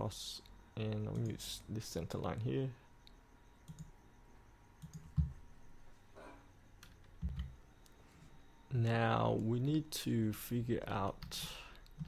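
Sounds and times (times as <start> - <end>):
computer mouse clicks: 4.8 - 5.4.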